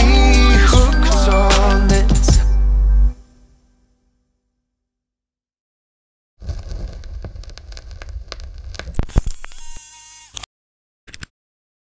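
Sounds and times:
crackling static noise: 6.4 - 9.8.

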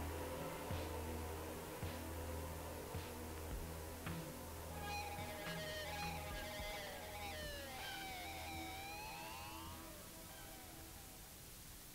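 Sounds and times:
low hum: 0.0 - 11.9
tape hiss: 0.0 - 11.9
gliding electronic tones: 4.1 - 11.6.

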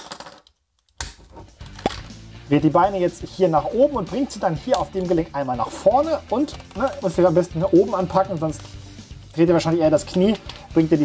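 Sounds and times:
plastic toy parts clicking: 0.0 - 2.1.

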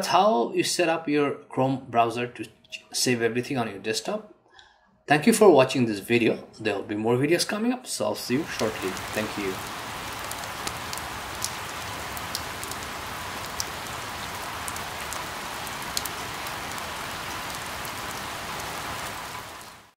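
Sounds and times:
steady rain falling: 8.3 - 20.0.

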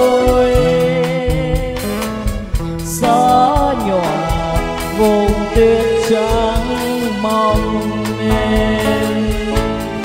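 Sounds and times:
drum beat: 0.0 - 10.0
live band playing slow ballad: 0.0 - 10.0
person singing: 0.0 - 10.0.

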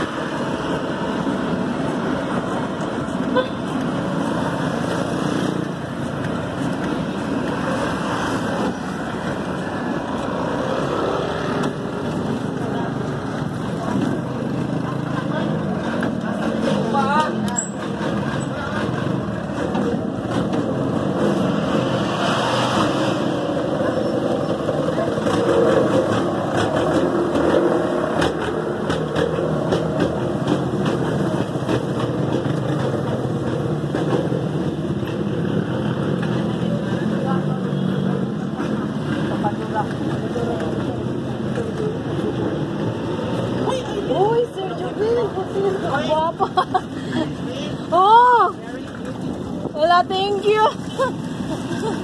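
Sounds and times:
faint voices: 5.7 - 21.0, 32.8 - 52.0
tricycle rolling over concrete: 23.4 - 37.5.

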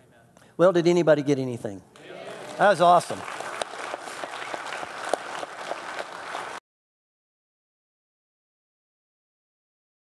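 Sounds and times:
crowd clapping: 2.0 - 6.6.

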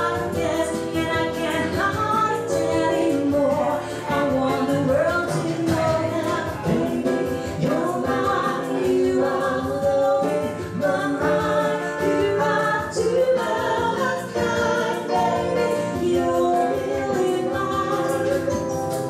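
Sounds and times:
woman singing a slow ballad: 0.0 - 18.5
digital piano chords: 0.0 - 19.0
hand shaker beat: 0.0 - 19.0.

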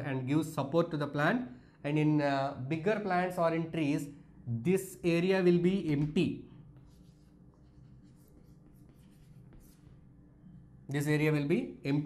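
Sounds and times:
chalk scratching on chalkboard: 6.8 - 10.1.

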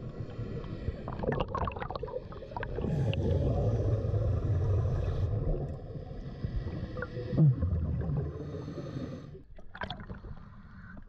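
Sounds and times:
underwater air hissing and bubbling: 0.0 - 11.0
deep bubbling rumble: 1.0 - 8.5.

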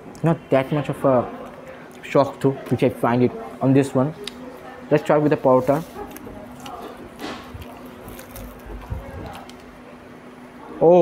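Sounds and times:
steady low hum: 0.0 - 11.0
man speaking: 4.9 - 6.0
flatbread tearing and crackling: 5.7 - 9.7.

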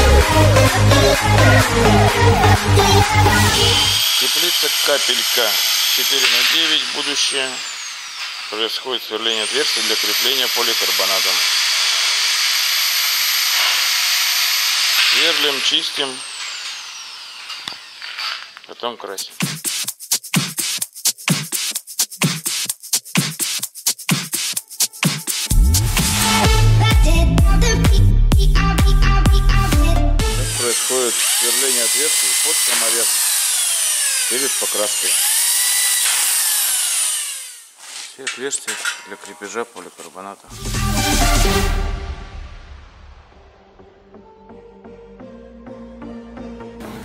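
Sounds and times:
electric drill spinning down: 2.6 - 18.7, 30.4 - 37.8.

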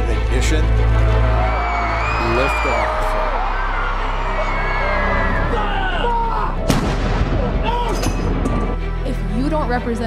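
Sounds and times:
cannon shot: 6.7 - 7.7.

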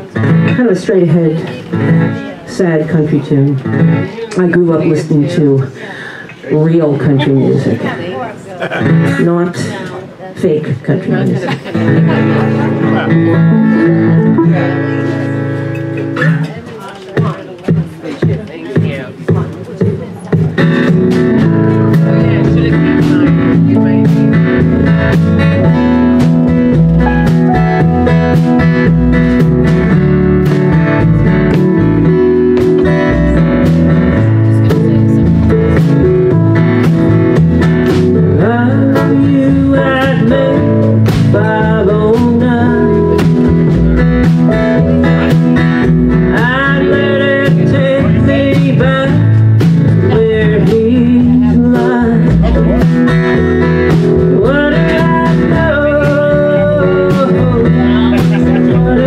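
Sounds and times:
drums: 0.0 - 6.4, 7.2 - 59.0
acoustic guitar strumming: 0.0 - 59.0
keyboard: 0.0 - 59.0
sliding melody line: 11.8 - 16.2, 20.8 - 59.0.

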